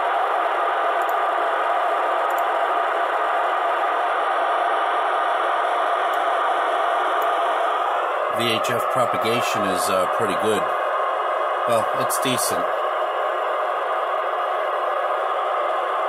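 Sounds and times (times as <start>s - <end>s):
radio static hissing: 0.0s - 16.0s.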